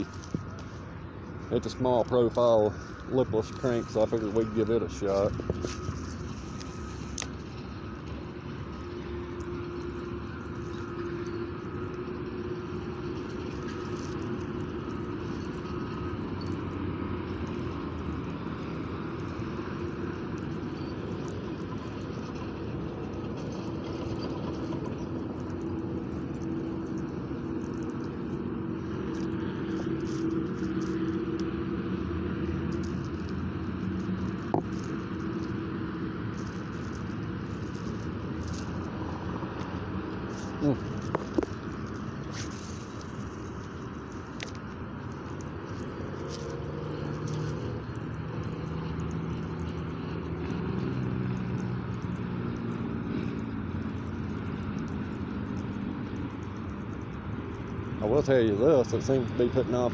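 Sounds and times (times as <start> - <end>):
distant road traffic rumble: 0.0 - 59.9
engine hum wavering in pitch: 0.0 - 59.9.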